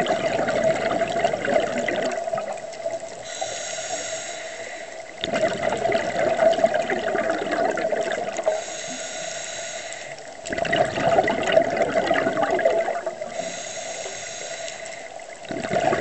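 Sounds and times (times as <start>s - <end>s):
bubbling exhalations: 0.0s - 3.3s, 5.2s - 8.6s, 10.4s - 13.6s, 15.4s - 16.0s
diver breathing through regulator: 3.2s - 5.1s, 8.4s - 10.4s, 13.2s - 15.2s.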